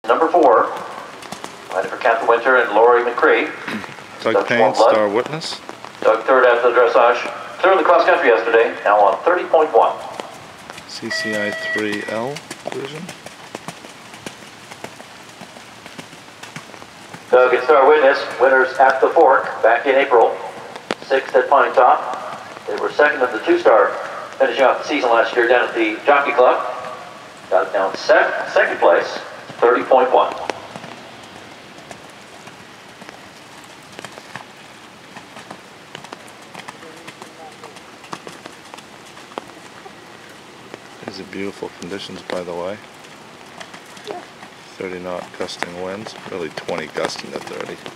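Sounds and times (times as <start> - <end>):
rain on an umbrella: 0.0 - 47.9.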